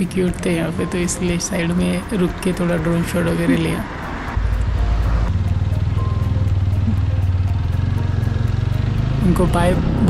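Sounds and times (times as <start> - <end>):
motorcycle engine running: 4.4 - 10.0.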